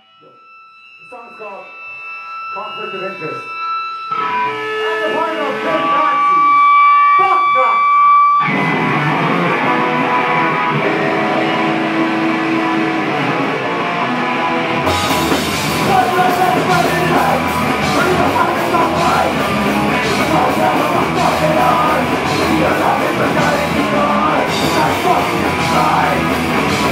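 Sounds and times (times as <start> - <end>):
held high guitar note: 0.0 - 26.9
electric guitars playing: 1.6 - 26.9
drums with cymbals: 14.9 - 26.9.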